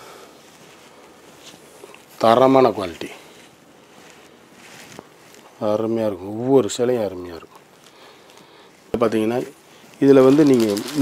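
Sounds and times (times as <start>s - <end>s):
man speaking in low voice: 2.2s - 3.3s, 5.6s - 7.5s, 9.0s - 11.0s.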